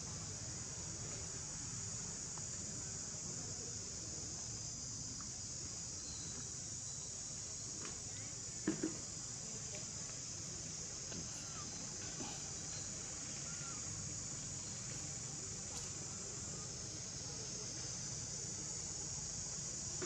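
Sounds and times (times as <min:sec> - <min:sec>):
high-pitched insect chorus: 0:00.1 - 0:20.0.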